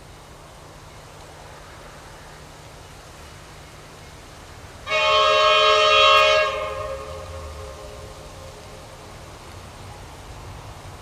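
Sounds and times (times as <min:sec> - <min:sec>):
locomotive engine rumble: 0:00.0 - 0:11.0
locomotive air horn: 0:04.8 - 0:08.8.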